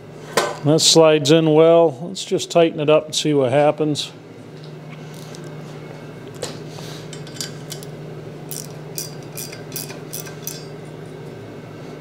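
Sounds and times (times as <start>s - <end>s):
wrench tightening bolt: 8.5s - 10.7s.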